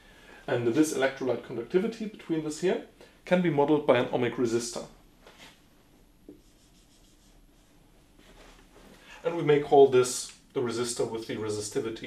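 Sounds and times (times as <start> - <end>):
marker pen on whiteboard: 6.2 - 8.6.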